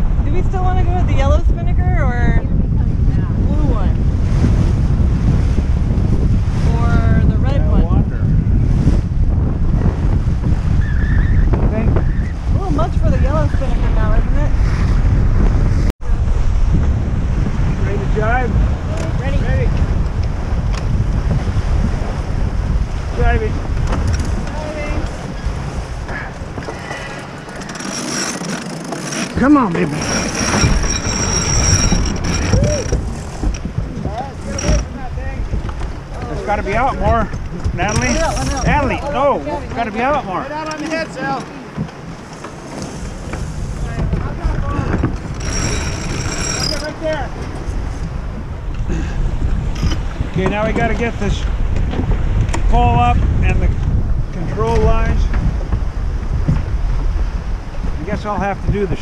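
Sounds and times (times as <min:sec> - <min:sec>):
water rushing past hull: 0:00.0 - 0:59.0
wind buffeting microphone: 0:00.0 - 0:59.0
high clicks and rings: 0:45.4 - 0:46.9.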